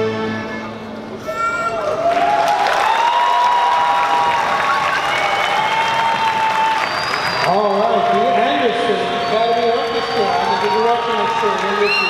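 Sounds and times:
audience applauding and cheering: 1.7s - 12.0s.

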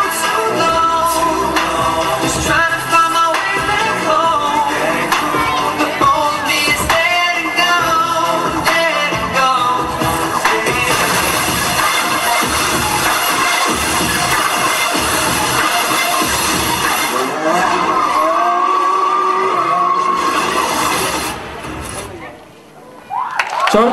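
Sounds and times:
electronic dance music: 0.0s - 21.8s.

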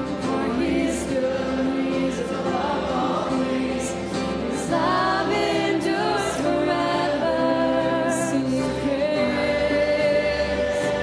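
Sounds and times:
woman singing: 0.0s - 3.5s, 4.5s - 11.0s
acoustic guitar: 0.0s - 11.0s.

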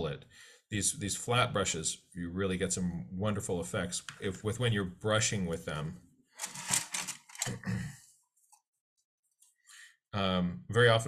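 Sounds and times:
man clearing his throat: 7.5s - 8.0s.

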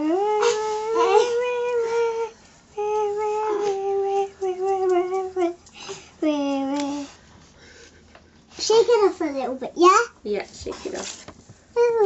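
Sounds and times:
person humming long notes: 0.0s - 5.6s.

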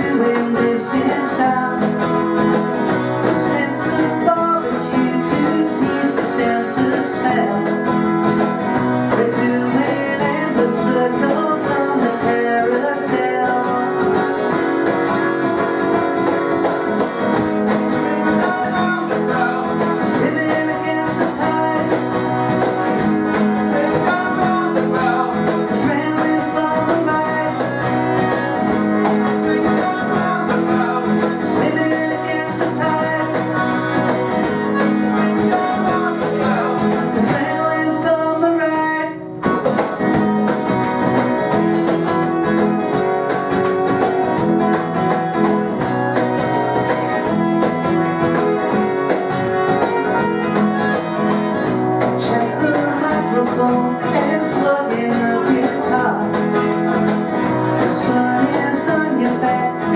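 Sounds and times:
cajon beat: 0.0s - 59.9s
piano accordion: 0.0s - 59.9s
strummed acoustic guitar: 0.0s - 59.9s.

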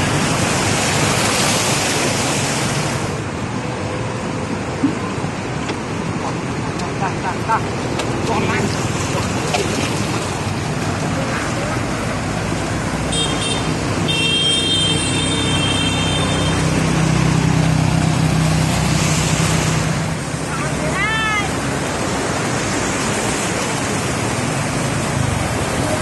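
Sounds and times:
water splashing and rushing: 0.0s - 26.0s
vehicle horn: 13.1s - 16.6s.

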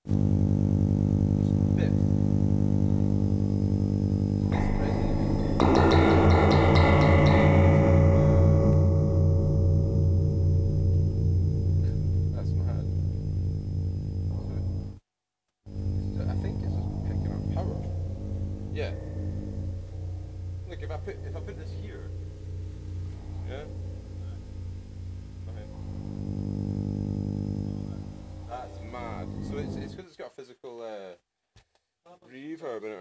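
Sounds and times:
distorted synthesizer drone: 0.2s - 15.0s, 15.7s - 30.0s
bright noisy swell: 4.4s - 14.9s, 15.8s - 30.0s.

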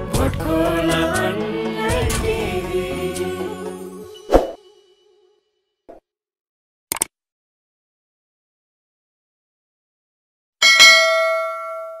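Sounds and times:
bell ding: 10.6s - 12.0s.

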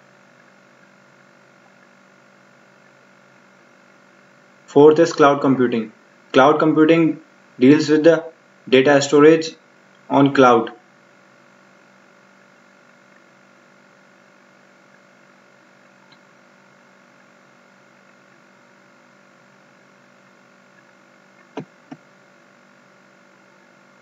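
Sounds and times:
faint electrical hum: 0.0s - 24.0s.

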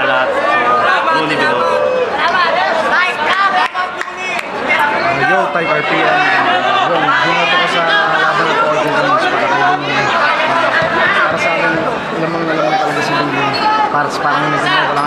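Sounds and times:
chatter of voices: 0.0s - 15.0s
man talking: 5.1s - 10.6s.

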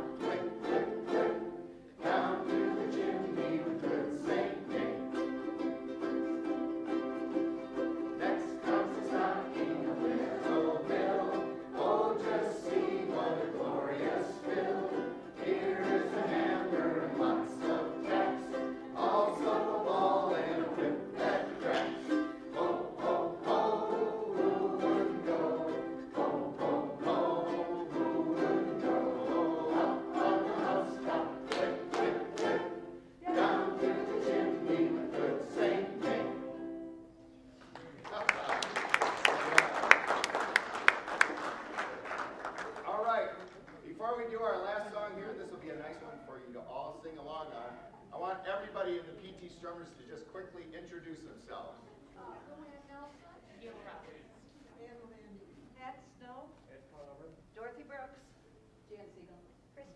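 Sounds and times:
people singing in chorus: 0.0s - 5.6s, 7.8s - 36.8s
ukuleles strumming: 0.0s - 38.0s.

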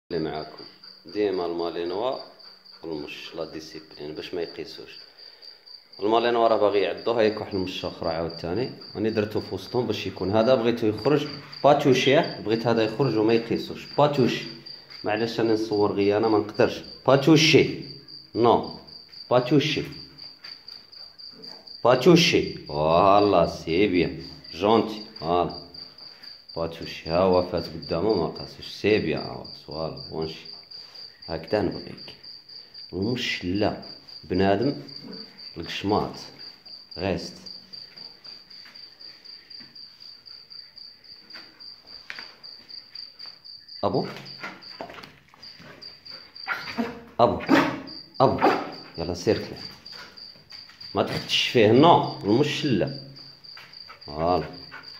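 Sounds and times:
cricket chirping: 0.1s - 54.9s.

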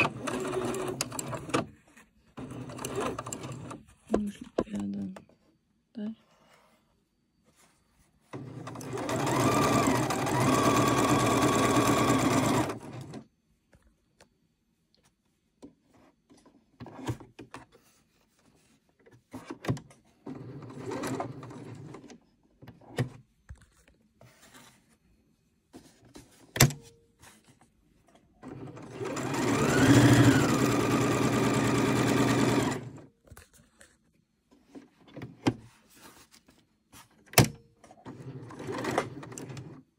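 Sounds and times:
sewing machine stitching: 0.0s - 1.7s, 2.4s - 3.8s, 8.3s - 13.2s, 20.2s - 22.2s, 28.4s - 33.1s, 37.9s - 39.8s.

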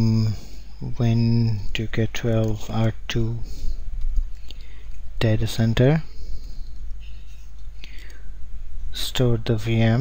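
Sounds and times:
low electrical hum: 0.0s - 10.0s
soft breathing: 3.4s - 5.1s, 6.0s - 8.4s.

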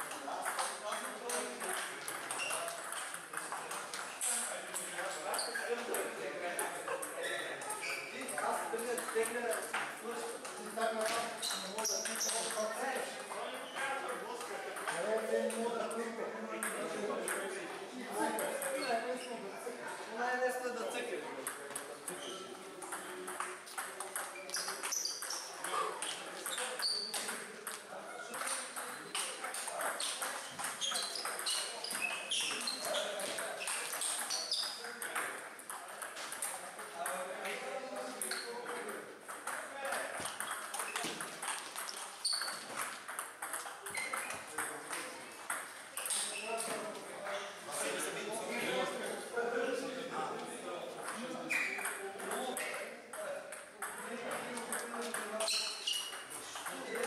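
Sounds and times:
table tennis ball clicking and bouncing: 0.0s - 5.0s, 8.8s - 9.9s, 14.4s - 15.6s, 16.6s - 17.6s, 21.4s - 22.2s, 22.8s - 37.6s, 38.2s - 46.8s, 51.0s - 57.0s.

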